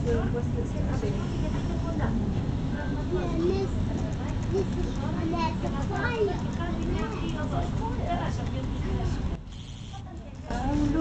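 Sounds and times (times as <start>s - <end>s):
people talking indistinctly: 0.0s - 11.0s.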